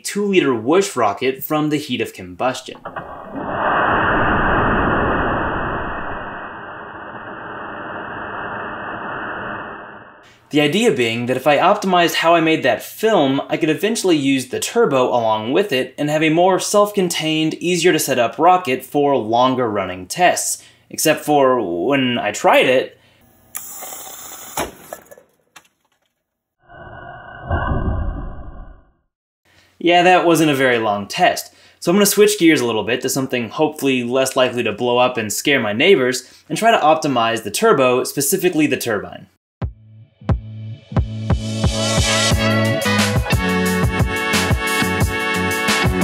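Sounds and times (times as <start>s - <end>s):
loud rushing burst: 2.8s - 10.2s
whoosh of fuel vapour burning: 2.8s - 10.3s.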